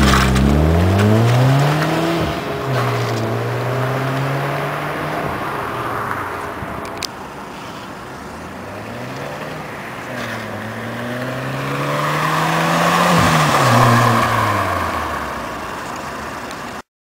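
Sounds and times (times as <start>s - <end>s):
car accelerating past: 0.0s - 6.9s, 8.5s - 15.7s.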